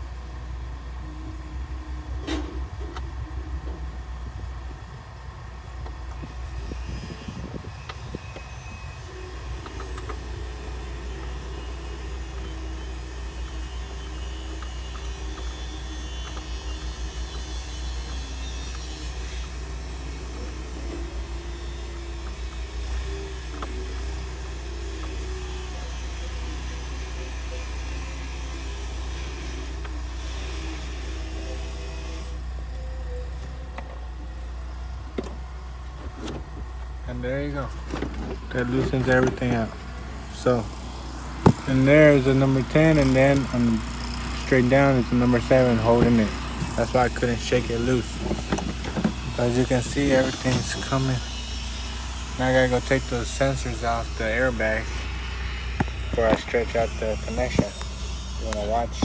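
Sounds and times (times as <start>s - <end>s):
vehicle rumble: 0.0s - 59.0s
wavering hum: 0.0s - 59.0s.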